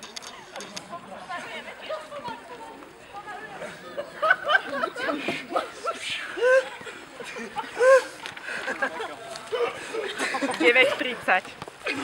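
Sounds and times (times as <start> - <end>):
background chatter: 0.0 - 12.0.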